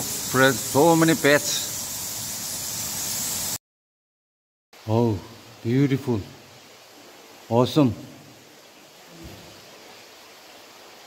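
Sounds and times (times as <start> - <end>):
steady hiss: 0.0 - 3.6, 4.8 - 11.0.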